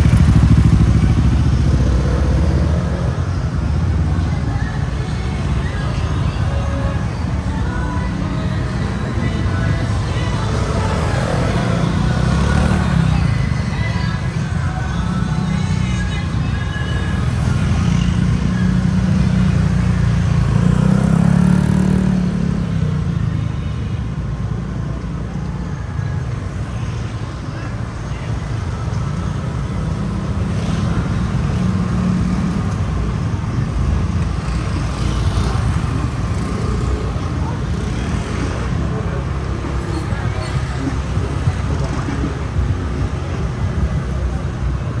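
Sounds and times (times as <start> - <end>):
motorbikes and cars passing: 0.0 - 45.0.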